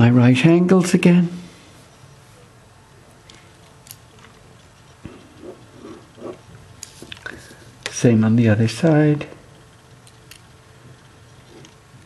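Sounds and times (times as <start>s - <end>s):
pen scratching on paper: 4.6s - 6.5s.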